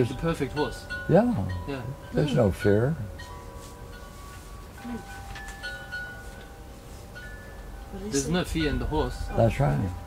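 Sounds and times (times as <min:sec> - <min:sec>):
wind chimes ringing: 0:00.0 - 0:10.0.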